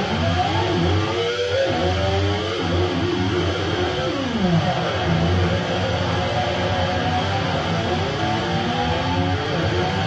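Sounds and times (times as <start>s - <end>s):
electric guitar note sliding down: 0.0s - 10.0s
live rock band playing: 0.0s - 10.0s.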